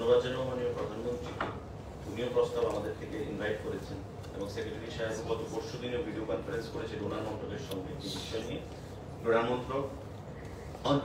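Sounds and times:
man speaking: 2.0 - 10.0.

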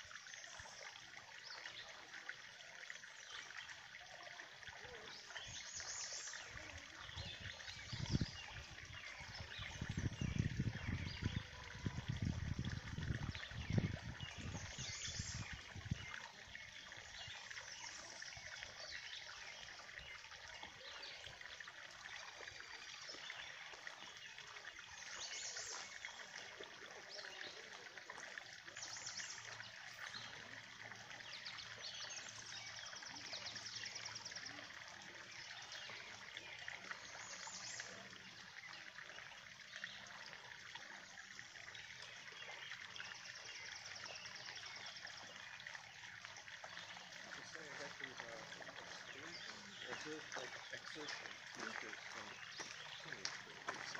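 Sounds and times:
water trickling into pond: 0.0 - 53.9
birds chirping: 4.7 - 53.9.

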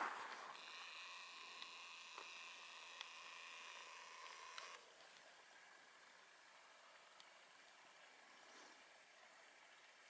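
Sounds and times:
camcorder zoom motor whine: 0.5 - 4.8
tiny ticks: 1.5 - 5.3.

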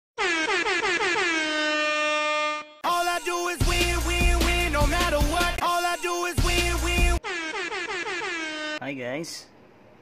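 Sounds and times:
air horn blasts: 0.2 - 2.9, 7.1 - 8.8.

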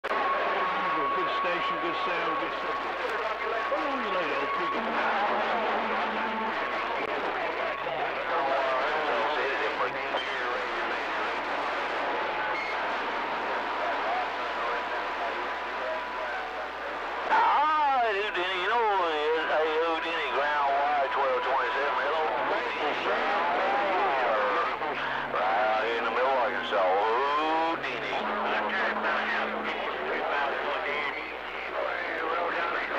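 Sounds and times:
steady radio whistle: 0.1 - 7.8, 9.4 - 11.6, 12.3 - 32.9
radio static: 0.1 - 32.9
garbled radio voices: 0.2 - 32.9.

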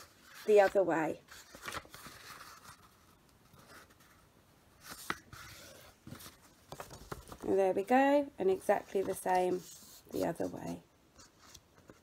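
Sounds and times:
paper crinkling: 0.0 - 4.2, 4.8 - 7.6
paper rustling: 0.0 - 4.2, 4.8 - 7.9, 8.5 - 12.0.

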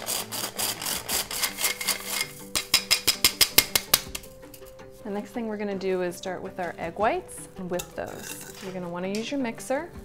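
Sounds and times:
flour sifter rasping: 0.0 - 2.9, 7.8 - 8.9.

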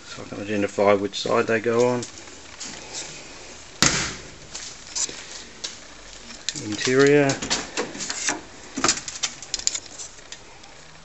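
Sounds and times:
sharp knock: 3.8 - 4.3.

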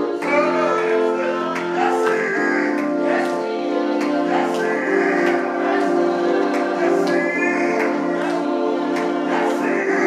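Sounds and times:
gospel choir singing: 0.0 - 10.0
organ-like chords: 0.0 - 10.0.

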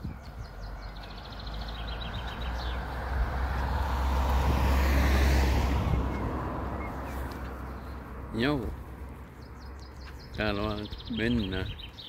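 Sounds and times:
vehicle passing by: 0.3 - 10.7.

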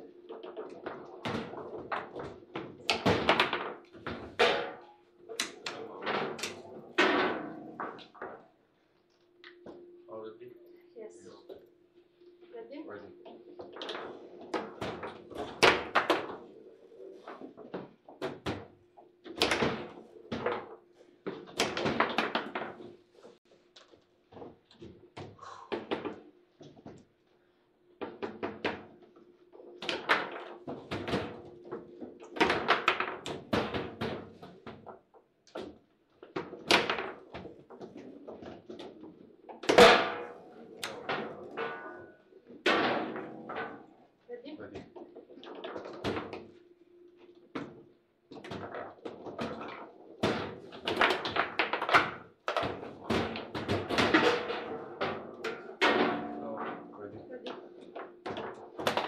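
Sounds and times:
foosball rods and ball clattering: 0.1 - 8.6, 13.2 - 27.1, 28.0 - 59.0.

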